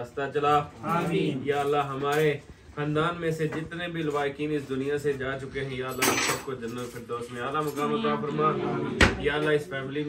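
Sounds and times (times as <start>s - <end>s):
cutlery and dishes clattering: 5.8s - 7.9s
man chanting prayer: 7.6s - 9.9s.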